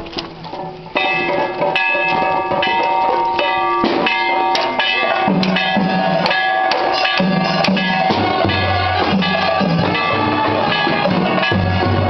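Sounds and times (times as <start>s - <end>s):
drum strokes: 0.6s - 12.0s
procession band held notes: 1.0s - 12.0s.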